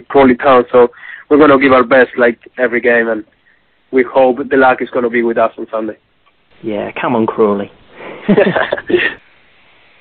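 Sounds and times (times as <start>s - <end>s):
faint telephone line hiss: 0.0s - 10.0s
laughter over telephone line: 8.0s - 9.2s.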